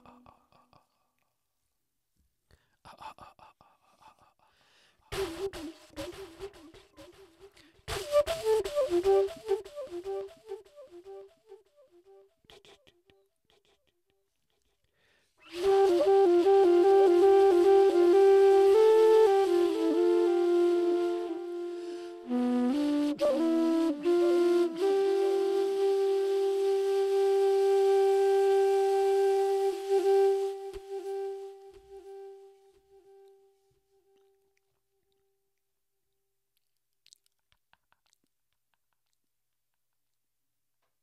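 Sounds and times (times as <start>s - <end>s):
breathy flute playing: 5.1s - 12.3s, 15.4s - 34.3s.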